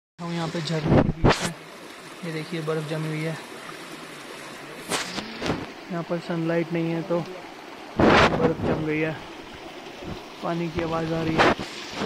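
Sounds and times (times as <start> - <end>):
stream flowing over rocks: 0.2 - 12.0.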